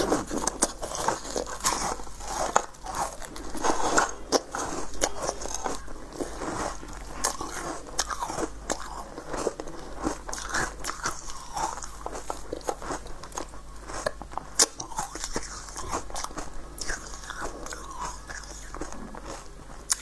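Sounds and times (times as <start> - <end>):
chewing and crunching sweet: 0.0 - 20.0.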